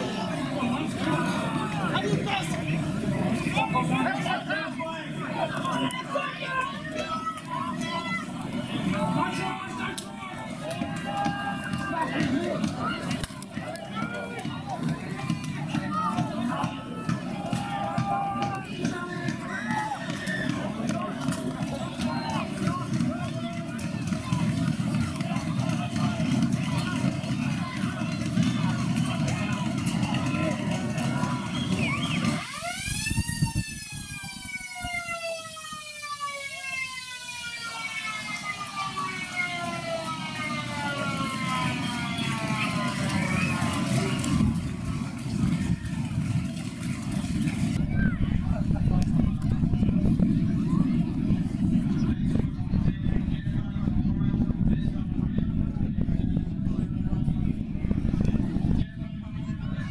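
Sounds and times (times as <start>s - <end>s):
crowd and field noise: 0.0s - 59.9s.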